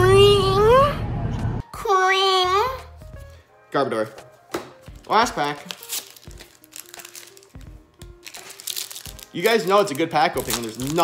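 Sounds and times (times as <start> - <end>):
soft background music: 0.0 - 11.0
foil wrapper crinkling: 4.9 - 11.0.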